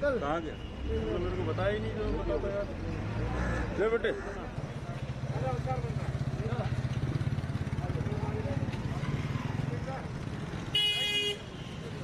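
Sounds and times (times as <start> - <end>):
vehicle horn honk: 10.7 - 11.6.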